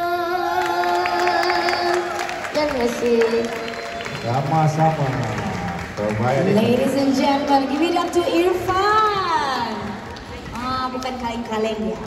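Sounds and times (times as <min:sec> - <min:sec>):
boy singing: 0:00.0 - 0:02.1.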